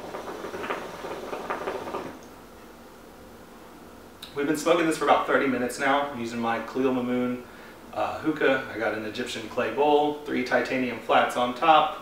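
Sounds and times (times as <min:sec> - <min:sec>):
hookah water bubbling: 0:00.0 - 0:02.3.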